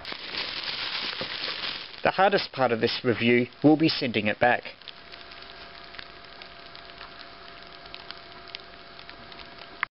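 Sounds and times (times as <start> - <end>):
faint steady hiss: 0.0 - 9.9
faint ticks: 4.8 - 9.9.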